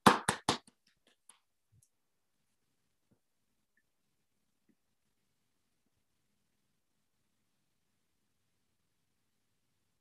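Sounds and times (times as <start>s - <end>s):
hand claps: 0.0s - 1.4s.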